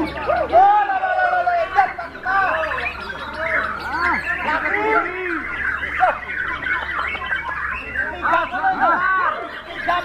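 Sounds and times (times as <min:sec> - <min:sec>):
birds singing whistled phrases: 0:00.0 - 0:10.0.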